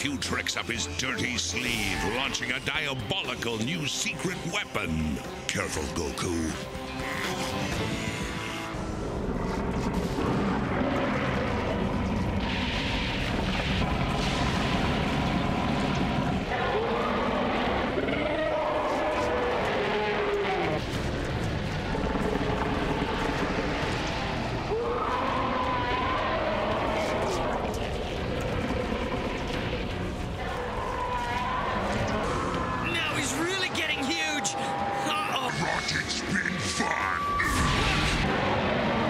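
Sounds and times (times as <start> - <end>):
monster roars and growls: 8.6 - 20.8, 35.4 - 39.0
deep rumbling: 8.7 - 18.7, 19.6 - 32.8.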